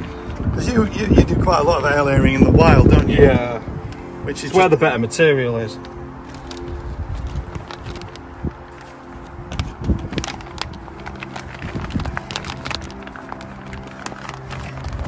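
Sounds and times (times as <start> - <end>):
background music: 0.0 - 15.0
plastic sheet crinkling: 5.8 - 15.0.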